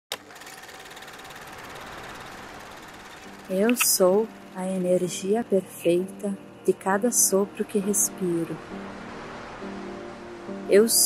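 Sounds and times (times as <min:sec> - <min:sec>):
film projector clatter: 0:00.1 - 0:04.2
projector click: 0:03.6 - 0:04.0.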